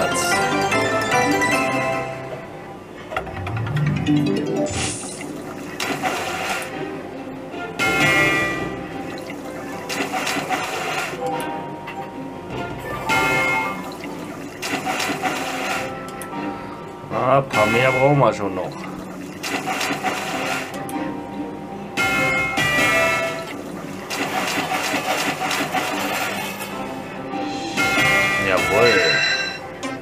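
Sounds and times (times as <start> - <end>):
slot machine jingles: 0.0 - 2.3, 3.3 - 5.6, 13.0 - 14.0, 17.5 - 18.9, 27.8 - 30.0
slot machine reels spinning: 3.2 - 6.7, 7.8 - 11.4, 12.8 - 16.2, 17.6 - 20.8, 22.0 - 26.8, 27.8 - 29.9
bubbling cauldron effects: 4.3 - 6.8.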